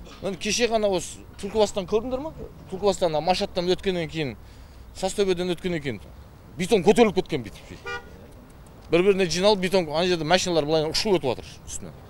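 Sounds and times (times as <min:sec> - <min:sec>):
vehicle horn toot: 0:07.8 - 0:08.2.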